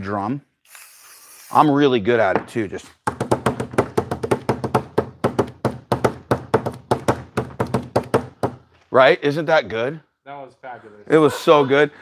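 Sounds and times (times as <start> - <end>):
hand drumming on a table: 3.0 - 8.6.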